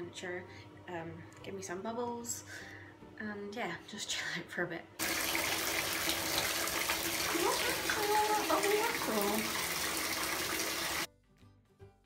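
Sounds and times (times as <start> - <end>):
bath tap running into bathtub: 5.0 - 11.1.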